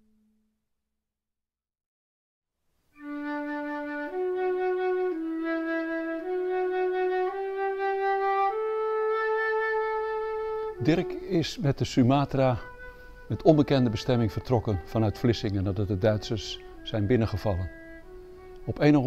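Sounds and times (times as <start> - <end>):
flute playing slow melody: 3.0 - 19.0.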